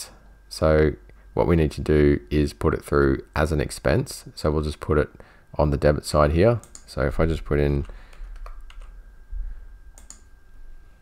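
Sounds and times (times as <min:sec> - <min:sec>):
faint high-pitched whine: 0:00.0 - 0:11.0
soft computer clicks: 0:06.6 - 0:07.0, 0:09.9 - 0:10.3.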